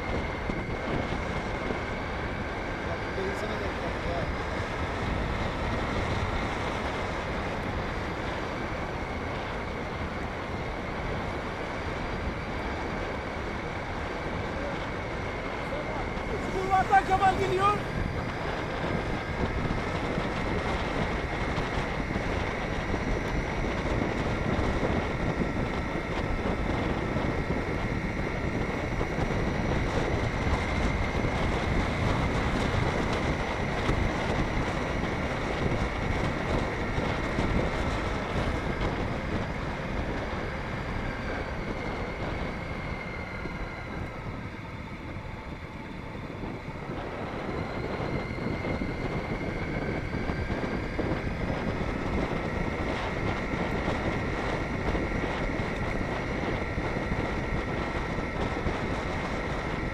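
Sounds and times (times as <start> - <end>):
wind rushing over microphone: 0.0 - 59.9.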